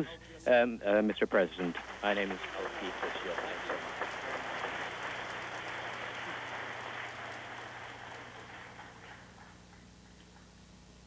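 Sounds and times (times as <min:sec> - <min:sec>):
audience applause: 0:01.4 - 0:09.7.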